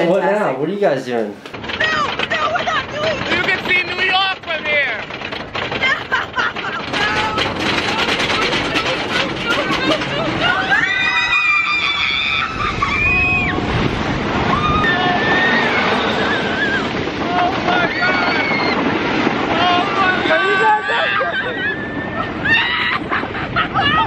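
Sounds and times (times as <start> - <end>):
roller coaster train rumbling: 0.8 - 24.0
wind on microphone: 5.0 - 24.0
riders screaming: 5.8 - 13.8, 14.4 - 24.0.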